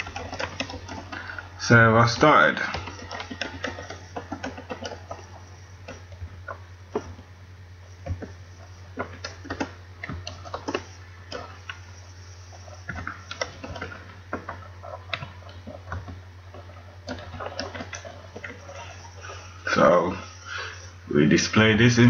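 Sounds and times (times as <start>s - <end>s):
computer keyboard typing: 0.0s - 7.2s, 8.0s - 19.8s
low electrical hum: 0.0s - 22.0s.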